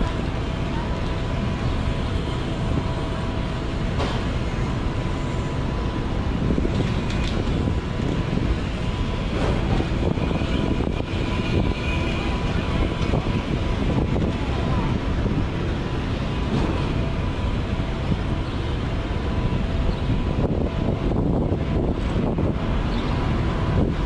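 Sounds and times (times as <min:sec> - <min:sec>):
traffic rumble: 0:00.0 - 0:24.0.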